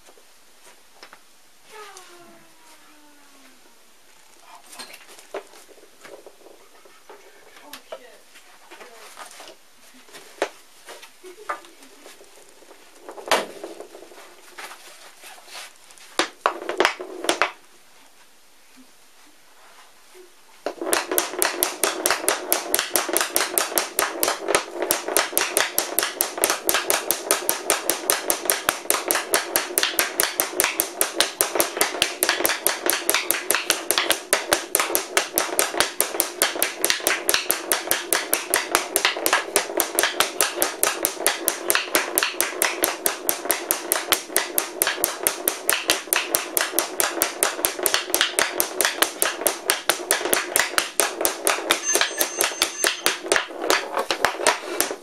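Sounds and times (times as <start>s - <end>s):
hockey stick clacking wooden ball: 4.8s - 7.2s, 11.5s - 14.8s, 16.2s - 17.6s, 20.6s - 55.0s.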